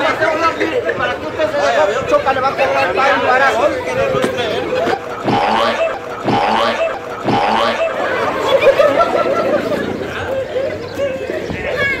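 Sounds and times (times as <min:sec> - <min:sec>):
comic upward sweep effect: 0:04.8 - 0:09.7.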